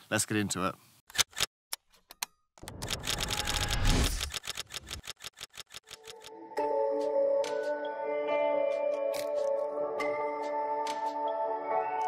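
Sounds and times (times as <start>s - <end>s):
camera shutter clicking: 2.7s - 6.3s.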